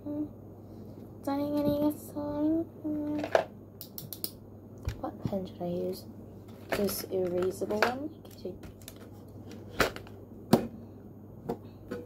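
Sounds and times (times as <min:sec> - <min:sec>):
person humming: 0:00.0 - 0:00.4, 0:02.0 - 0:03.3.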